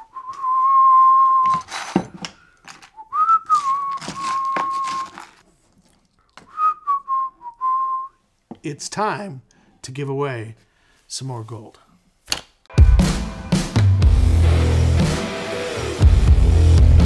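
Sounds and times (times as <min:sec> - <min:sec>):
man whistling: 0:00.0 - 0:01.7, 0:02.9 - 0:05.2, 0:06.5 - 0:08.2.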